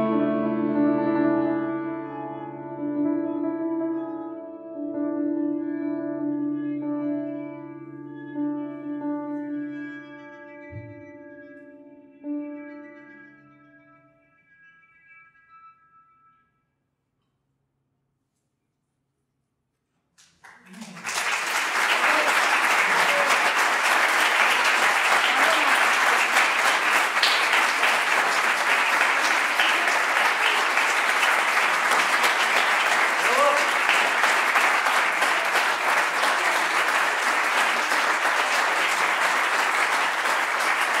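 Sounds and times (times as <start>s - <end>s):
audience applauding: 20.2s - 41.0s.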